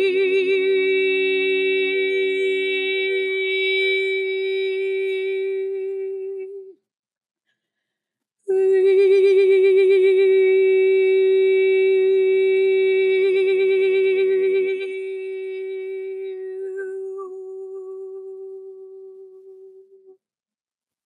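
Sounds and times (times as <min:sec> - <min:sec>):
woman singing a long held note: 0:00.0 - 0:06.7, 0:08.5 - 0:20.2.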